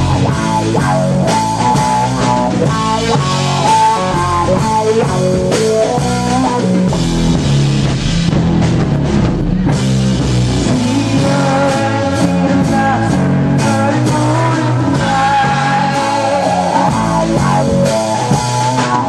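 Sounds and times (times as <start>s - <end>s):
electric guitar melody: 0.0s - 19.0s
rock band playing: 0.0s - 19.0s.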